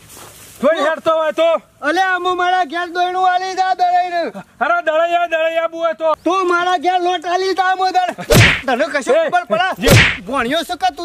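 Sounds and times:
loud sharp slap: 8.3 - 8.6, 9.9 - 10.2.

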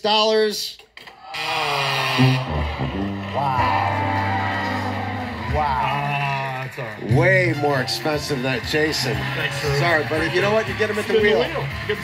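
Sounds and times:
studio audience groaning: 1.1 - 11.9.

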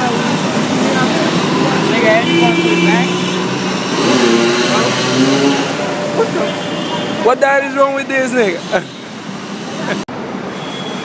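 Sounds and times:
passing road traffic: 0.0 - 11.0.

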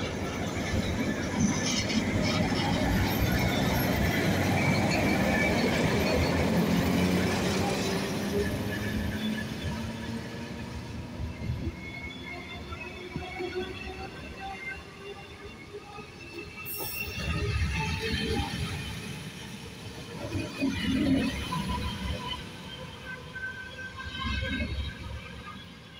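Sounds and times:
train wheels rumbling and knocking: 0.0 - 12.6.

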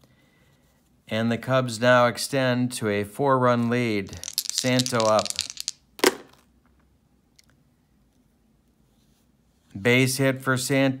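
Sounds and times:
dice clattering on tabletop: 4.1 - 6.5.

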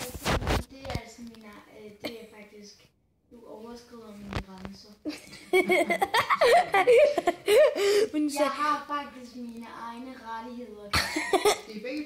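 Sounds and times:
boy laughing and vocalizing: 5.1 - 8.4, 10.9 - 11.7
boy coughing: 10.9 - 11.8.

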